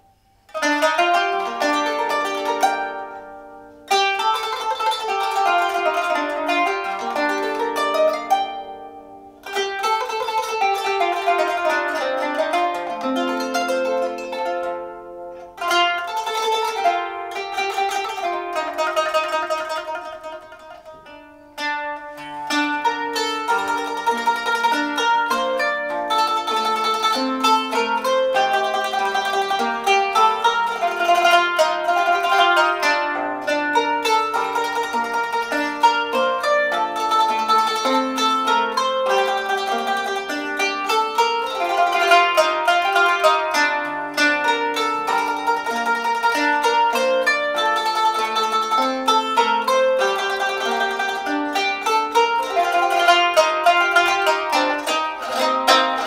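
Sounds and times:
plucked zither notes: 0.0 - 56.0.

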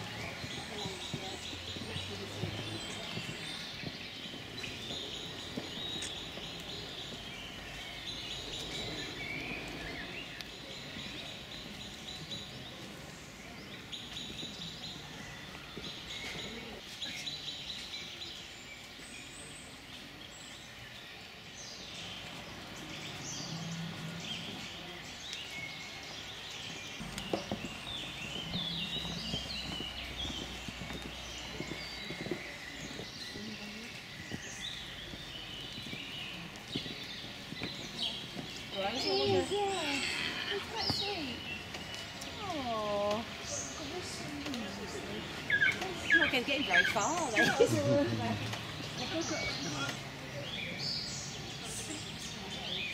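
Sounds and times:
outdoor background hiss: 0.0 - 52.9
songbirds chirping and singing: 0.0 - 52.9.

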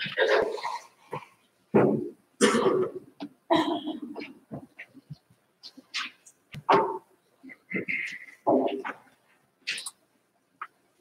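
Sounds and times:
person coughing: 2.4 - 4.2.

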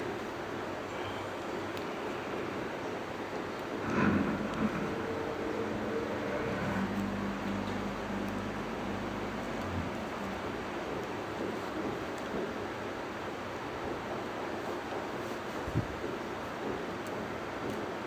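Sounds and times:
steady background noise: 0.0 - 18.0
low droning hum: 3.6 - 12.2.

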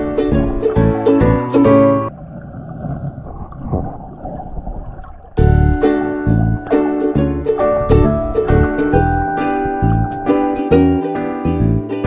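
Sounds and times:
underwater churning water rush: 0.0 - 9.8.

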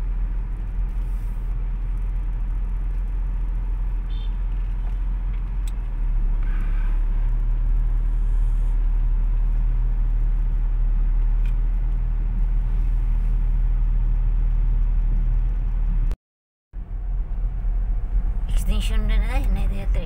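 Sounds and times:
car engine rumble: 0.0 - 16.2, 16.8 - 20.0
road noise: 0.0 - 16.2, 16.8 - 20.0.

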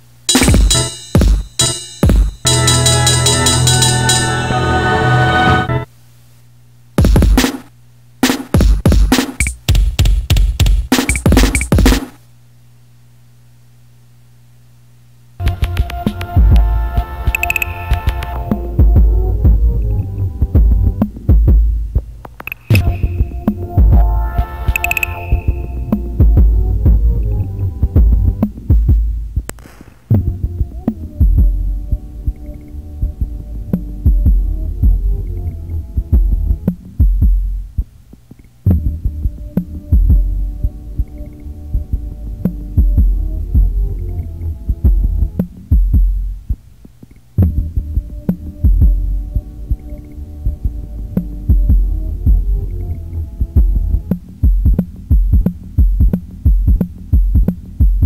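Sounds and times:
sampled loop: 0.3 - 5.7, 15.4 - 35.5
throbbing bass pulse: 15.4 - 17.1, 18.0 - 24.7, 25.3 - 32.4, 33.0 - 37.8, 38.7 - 40.8, 41.7 - 46.5, 47.4 - 49.8, 50.4 - 58.0.

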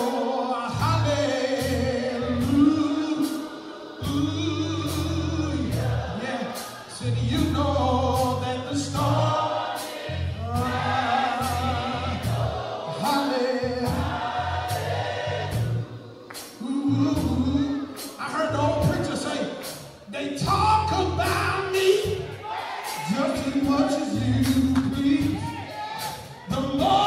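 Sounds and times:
choir singing gospel: 0.0 - 27.0
steady drum beat: 0.0 - 27.0
bass line: 0.7 - 3.0, 4.0 - 6.2, 7.0 - 9.4, 10.1 - 12.8, 13.6 - 16.0, 16.6 - 19.2, 19.8 - 22.3.

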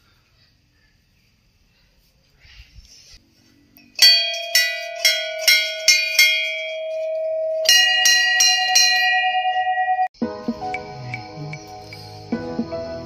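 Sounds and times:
higher-pitched bell struck: 4.0 - 10.1
large brass bell ringing: 4.0 - 10.1.

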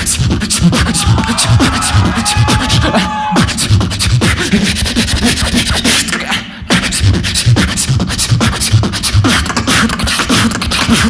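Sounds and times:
beatboxing through microphone: 0.0 - 11.0.

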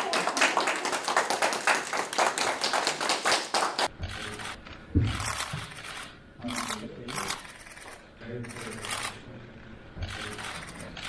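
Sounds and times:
group applauding: 0.0 - 3.9.

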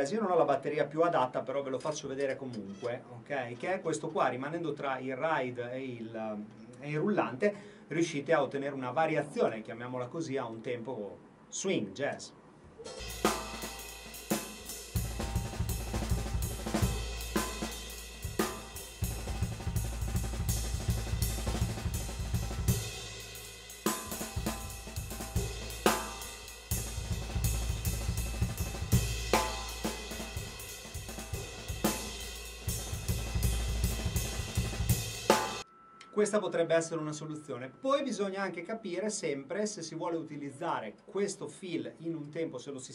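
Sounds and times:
bass drum: 12.9 - 35.6
ride cymbal: 12.9 - 35.6
snare drum: 12.9 - 35.6.

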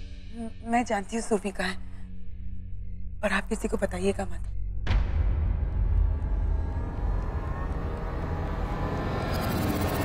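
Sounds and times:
low dramatic rumbling drone: 0.0 - 10.0.

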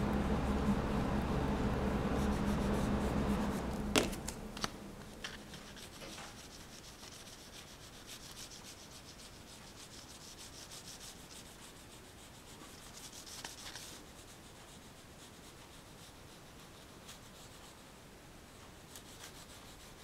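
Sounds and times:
oil pastel scratching on paper: 2.1 - 3.8, 5.2 - 18.0, 18.8 - 20.0.

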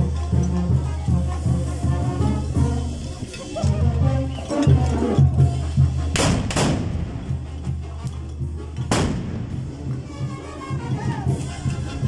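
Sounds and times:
music: 0.0 - 12.0
musket shots echoing: 6.2 - 7.0, 8.9 - 9.4.

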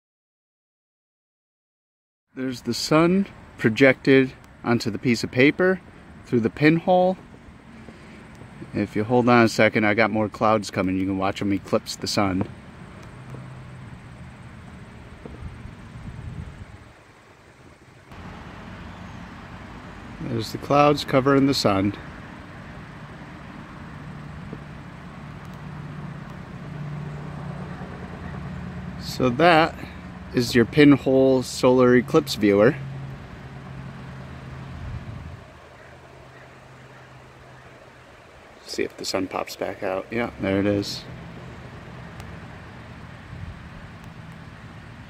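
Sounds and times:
low mechanical hum: 10.2 - 45.0
faint small clicks: 25.4 - 25.6.

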